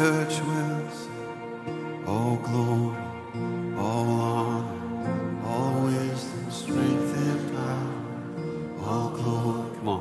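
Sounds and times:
man singing: 0.0s - 10.0s
strummed acoustic guitar: 0.0s - 10.0s.

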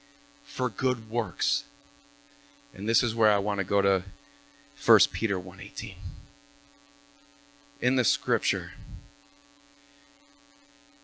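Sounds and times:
faint electrical mains hum: 0.0s - 11.0s
man speaking: 0.5s - 1.7s, 2.8s - 4.2s, 4.8s - 6.2s, 7.8s - 9.1s.

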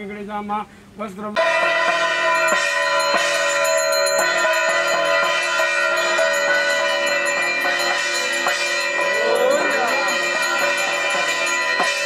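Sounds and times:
music: 1.4s - 12.0s
temple bells ringing: 1.4s - 12.0s.

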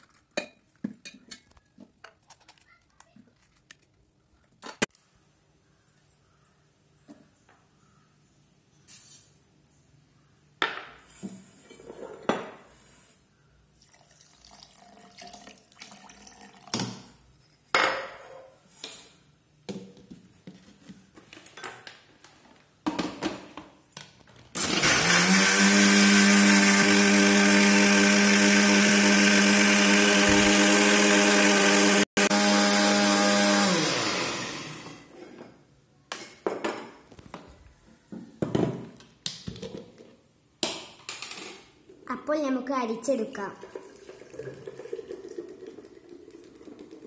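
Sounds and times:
juice pouring into strainer: 13.8s - 16.8s, 43.6s - 47.0s
mixer grinder running: 24.6s - 35.1s.

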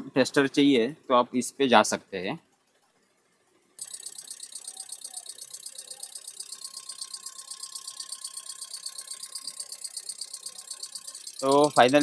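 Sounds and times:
fuel injectors clicking rapidly: 2.4s - 12.0s.

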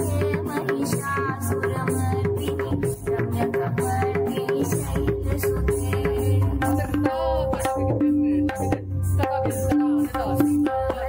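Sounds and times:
tabla drumming: 0.0s - 11.0s.

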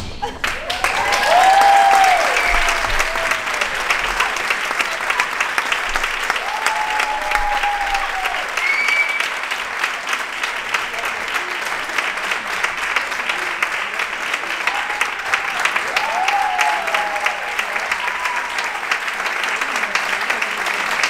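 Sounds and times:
people cheering: 0.2s - 21.0s
audience applauding: 0.3s - 21.0s.

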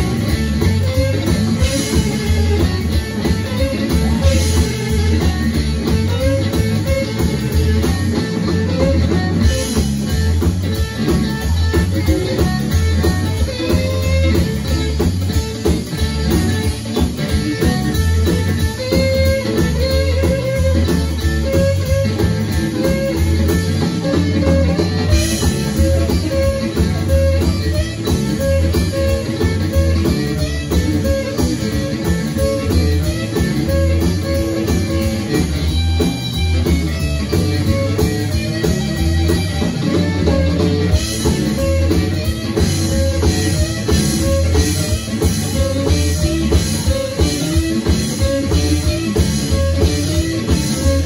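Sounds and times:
amplified harmonica: 0.0s - 51.0s
drum kit: 0.0s - 51.0s
electric bass: 0.0s - 51.0s
electric guitar: 0.0s - 51.0s.

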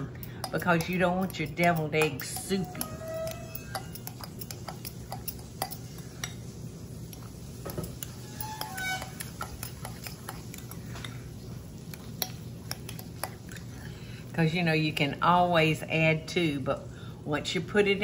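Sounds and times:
fork scraping a glass bowl: 0.5s - 6.4s, 7.1s - 11.2s.

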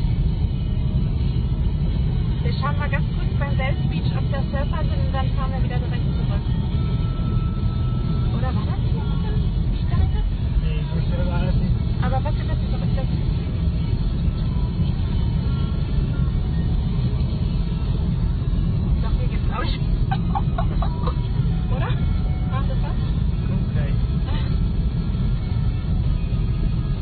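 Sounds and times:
car cabin road and engine rumble: 0.0s - 27.0s.

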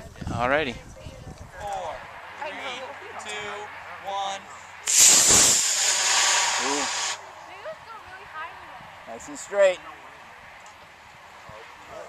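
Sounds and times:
model rocket motor hiss: 4.8s - 7.2s.

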